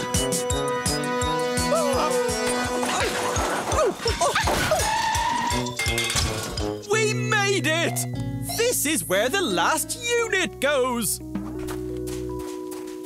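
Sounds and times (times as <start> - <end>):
background music with steady beat: 0.0 - 13.0
wavering voice-like cries: 1.6 - 5.6.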